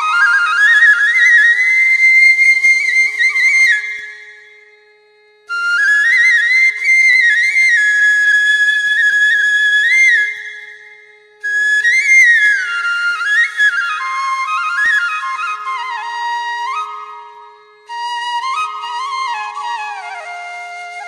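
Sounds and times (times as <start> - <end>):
solo flute music: 0.0 - 21.0.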